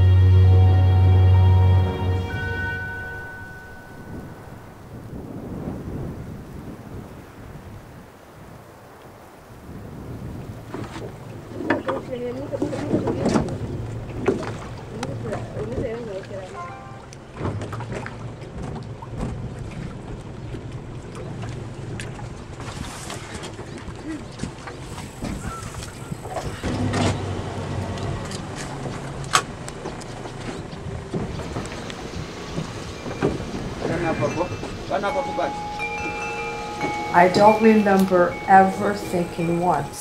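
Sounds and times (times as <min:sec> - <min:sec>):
held note of music: 0:00.0 - 0:05.1, 0:16.5 - 0:17.4, 0:33.0 - 0:40.0
wind rumbling on microphone: 0:02.3 - 0:40.0
indistinct voices: 0:33.3 - 0:40.0.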